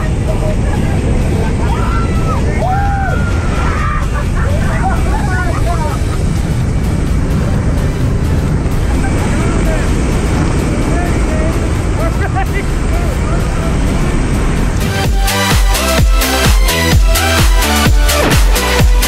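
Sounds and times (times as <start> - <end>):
muffled shouted voices: 0.0 - 5.9
propeller engine noise: 0.0 - 19.0
wind rushing: 0.0 - 19.0.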